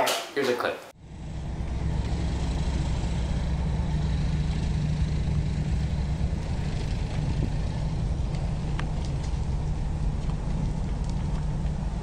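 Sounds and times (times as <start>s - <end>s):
fire roaring and hissing: 1.0s - 12.0s.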